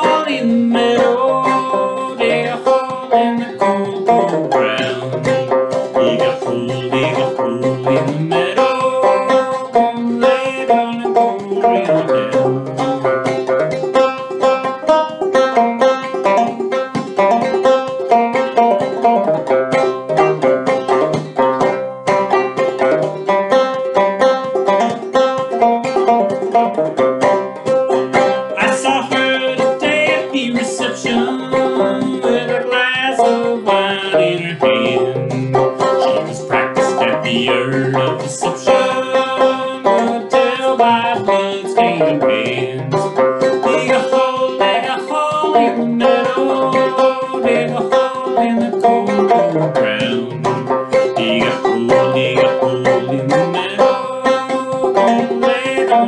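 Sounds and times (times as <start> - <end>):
banjo playing fast plucked notes: 0.0 - 56.0.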